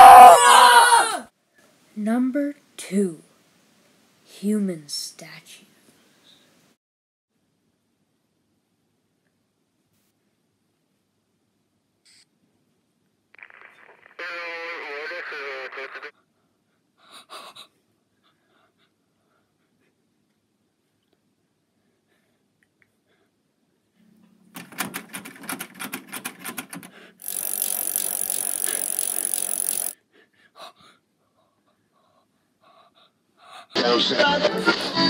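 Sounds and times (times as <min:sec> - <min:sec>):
loud static hiss: 0:13.4 - 0:16.1
rapid rattling clicks: 0:24.6 - 0:30.0.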